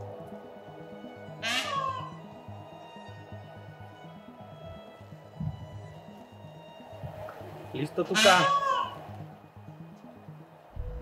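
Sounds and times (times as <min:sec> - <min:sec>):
peacock wailing call: 0:00.0 - 0:10.2
background music with low beat: 0:00.0 - 0:11.0.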